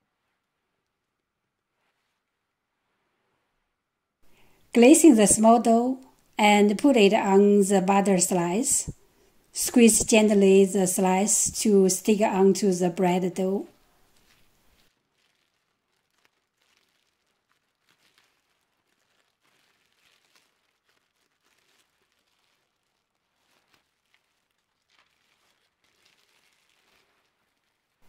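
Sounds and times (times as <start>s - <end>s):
plastic cling film crinkling: 11.4s - 28.0s.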